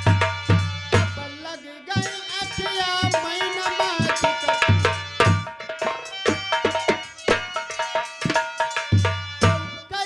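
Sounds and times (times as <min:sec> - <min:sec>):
hand drum rhythm: 0:00.0 - 0:01.3, 0:02.0 - 0:09.8
held melodic notes: 0:00.0 - 0:10.0.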